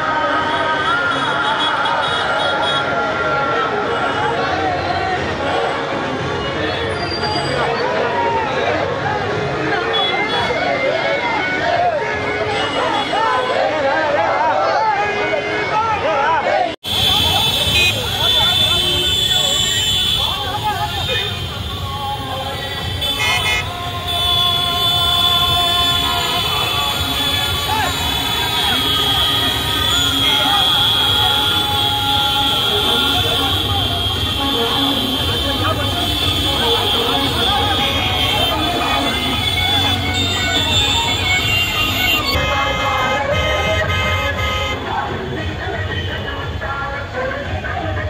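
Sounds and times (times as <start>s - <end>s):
horns honking: 0.0s - 4.7s, 9.8s - 13.7s, 15.0s - 46.7s
crowd voices: 0.0s - 48.0s
street noise: 0.0s - 48.0s
scooter and motorcycle engines: 16.8s - 48.0s.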